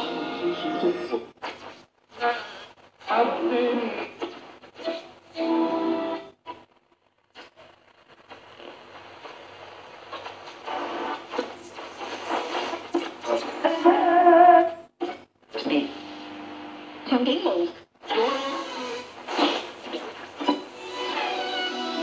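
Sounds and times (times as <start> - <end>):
music from radio loudspeaker: 0.0 - 22.0
radio being tuned: 0.0 - 22.0
broadcast speech on radio: 2.1 - 4.9.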